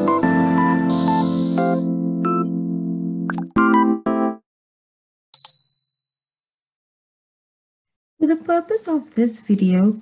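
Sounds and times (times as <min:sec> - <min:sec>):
button clicks: 0:03.3 - 0:03.5
high notification ding: 0:05.4 - 0:06.2.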